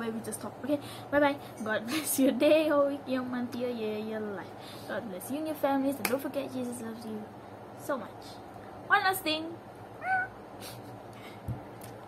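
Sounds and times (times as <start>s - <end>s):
woman imitating cat meow: 10.0s - 10.4s.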